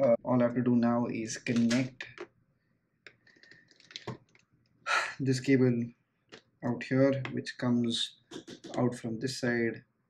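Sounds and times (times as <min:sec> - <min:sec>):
plastic clicks and rustling: 0:03.1 - 0:04.5.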